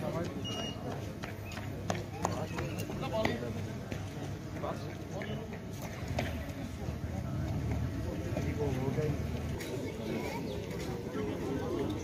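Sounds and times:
running footsteps on asphalt: 0.0 - 9.6.

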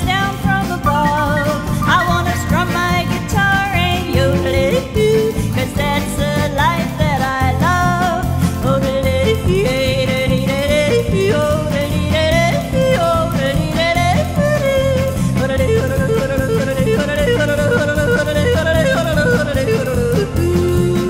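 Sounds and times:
country band playing: 0.0 - 21.0.

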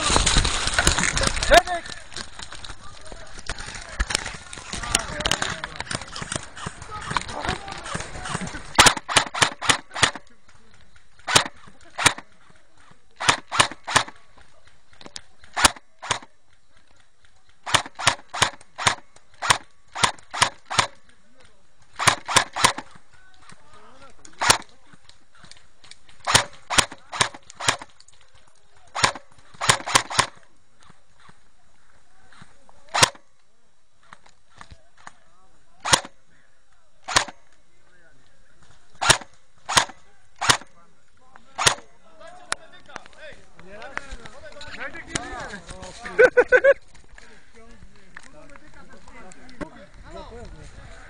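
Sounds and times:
airsoft gun shots: 5.3 - 10.3, 11.2 - 12.3, 13.2 - 14.2, 15.5 - 16.3, 17.6 - 21.0, 22.0 - 23.0, 24.4 - 24.7, 26.2 - 27.9, 28.9 - 30.4, 32.9 - 33.3, 35.8 - 36.2, 37.0 - 37.5, 39.0 - 40.7, 41.6 - 42.0.

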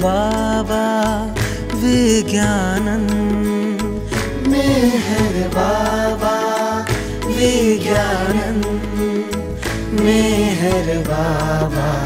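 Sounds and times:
steady low drone: 2.8 - 12.0
person singing a chant: 3.2 - 12.0.

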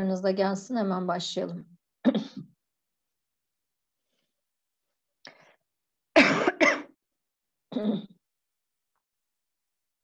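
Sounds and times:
woman coughing: 2.0 - 2.5, 6.2 - 7.0.

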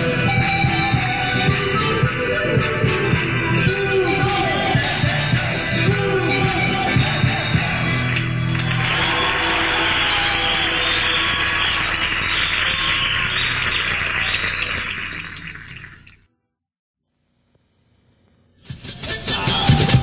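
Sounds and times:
live folk band playing: 0.0 - 8.8
audience applause: 8.5 - 16.0.

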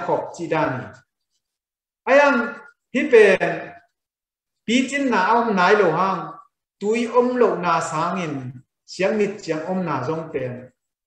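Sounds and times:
man speaking: 0.0 - 1.2, 2.0 - 10.9.

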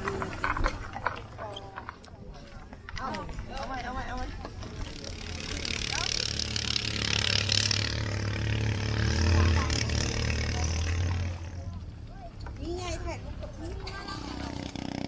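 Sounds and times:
people's voices: 0.0 - 15.0
motor engine running: 4.5 - 12.0.

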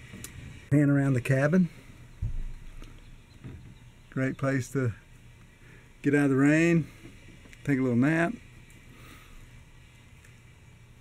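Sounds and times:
low dull thump: 2.2 - 2.8.

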